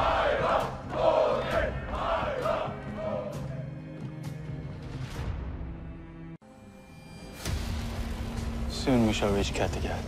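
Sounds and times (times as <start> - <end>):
men chanting a battle cry: 0.0 - 3.8
low dramatic music: 0.0 - 10.0.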